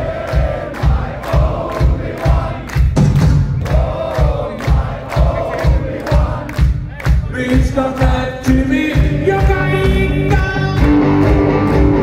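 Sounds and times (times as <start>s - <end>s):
crowd chanting: 0.0s - 2.9s, 3.6s - 6.7s
kick drum beat: 0.0s - 11.0s
live rock band: 7.1s - 12.0s.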